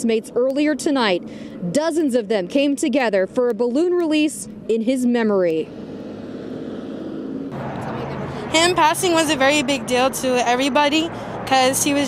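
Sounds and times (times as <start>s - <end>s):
passing traffic rush: 0.0s - 12.0s.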